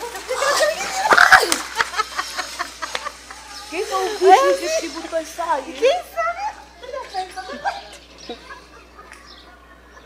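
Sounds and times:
people talking and exclaiming: 0.0s - 10.0s.

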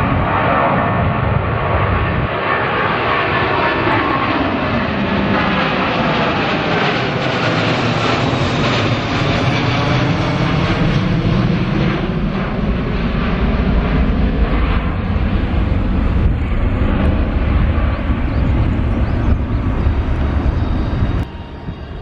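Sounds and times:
jet engines at takeoff power: 0.0s - 22.0s.

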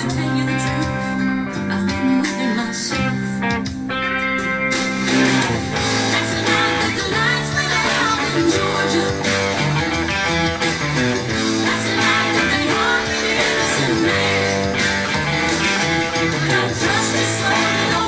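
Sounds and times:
electric guitar playing: 0.0s - 18.0s.

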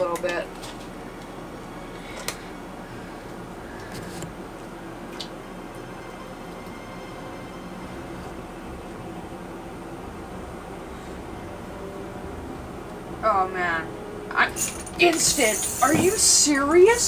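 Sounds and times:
faint hum: 0.0s - 17.0s.

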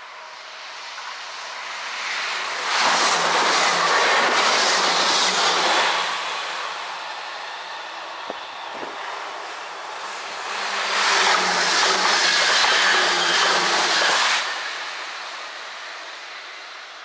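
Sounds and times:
electric train passing: 0.0s - 17.0s.

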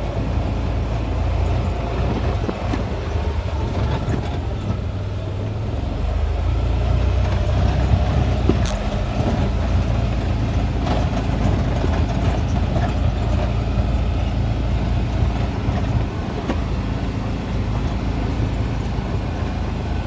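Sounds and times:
vehicle engine and road rumble: 0.0s - 20.0s.

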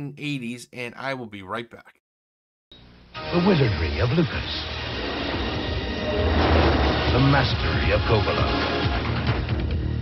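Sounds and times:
spaceship rushing rumble: 4.4s - 9.1s.

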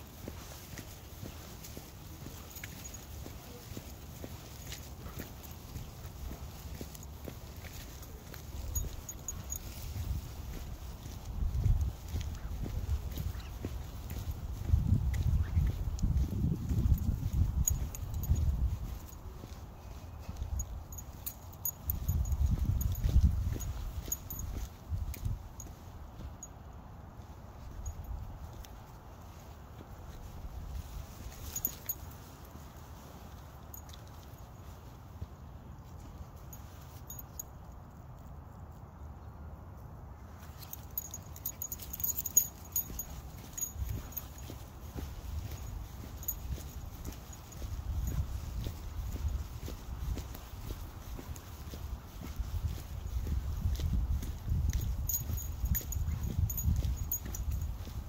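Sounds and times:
footsteps on concrete: 0.0s - 26.4s.

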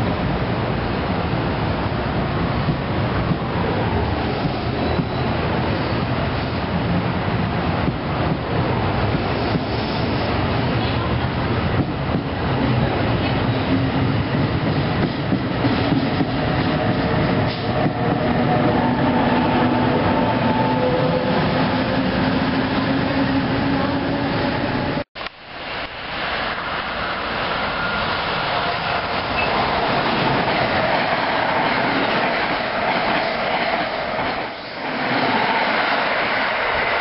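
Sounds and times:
train wheels rumbling on rails: 0.1s - 25.1s, 25.7s - 37.0s.

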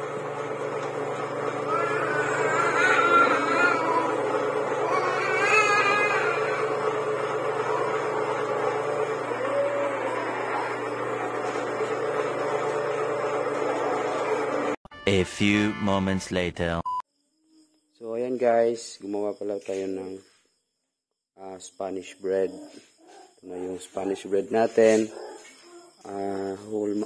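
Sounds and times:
dough roller motor humming: 0.0s - 14.8s.

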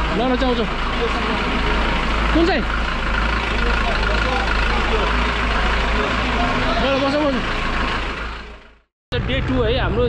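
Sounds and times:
vehicle engine idling: 0.0s - 10.0s.

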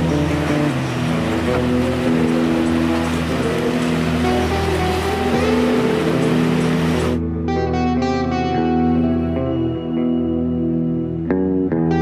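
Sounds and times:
music of held notes: 0.0s - 12.0s.

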